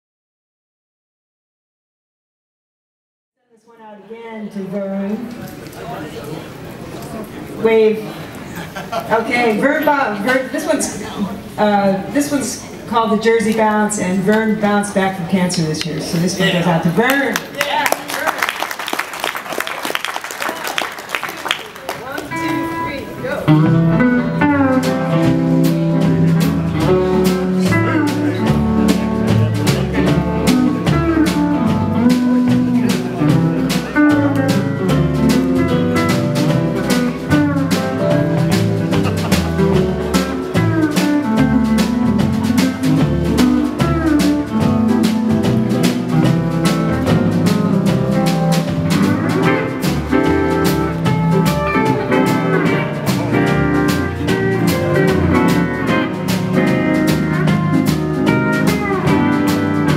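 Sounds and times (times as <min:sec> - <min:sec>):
bass: 0:07.6 - 0:59.9
drums keeping steady beat: 0:08.6 - 0:59.9
lap steel guitar swing melody: 0:09.1 - 0:11.0, 0:11.6 - 0:17.3, 0:22.2 - 0:59.9
rhythm guitar: 0:21.9 - 0:59.9
piano: 0:22.2 - 0:59.9.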